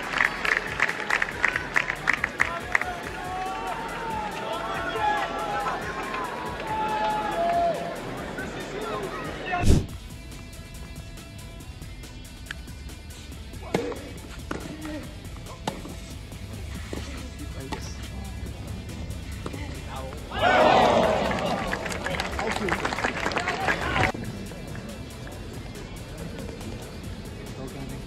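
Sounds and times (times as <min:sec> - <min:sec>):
crowd cheering and applauding: 0:00.0 - 0:09.6, 0:20.2 - 0:24.2
tennis ball hits: 0:13.7 - 0:14.8, 0:17.7 - 0:18.2.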